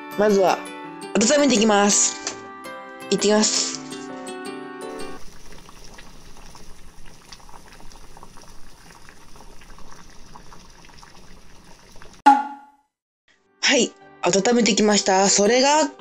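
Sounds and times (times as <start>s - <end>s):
water boiling and bubbling: 5.1s - 12.2s
loud pitched sound effect: 12.3s - 12.7s.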